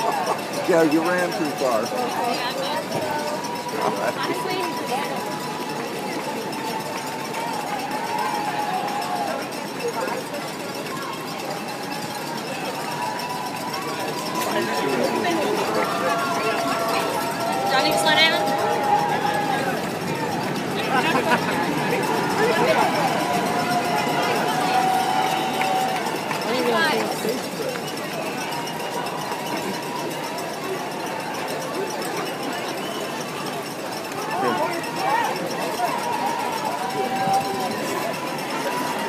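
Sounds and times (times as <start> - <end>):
crowd cheering and chattering: 0.0 - 39.0
runners' footsteps on pavement: 0.0 - 39.0.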